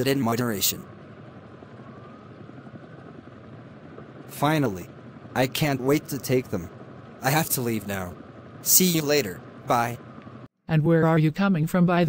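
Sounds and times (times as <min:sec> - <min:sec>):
faint hiss of distant traffic: 0:00.0 - 0:10.5
thin faint whine: 0:00.0 - 0:10.5.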